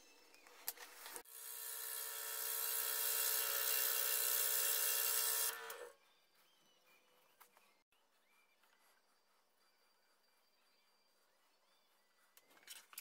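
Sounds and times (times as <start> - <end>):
scroll saw cutting wood: 0.8 - 6.0.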